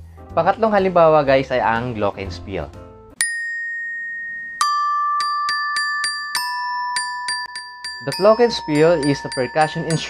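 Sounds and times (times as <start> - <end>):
glockenspiel notes ringing: 3.2 - 10.0.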